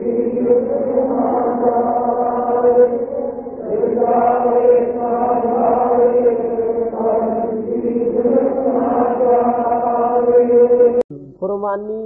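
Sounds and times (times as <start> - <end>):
voice chanting sustained notes: 0.0 - 11.0.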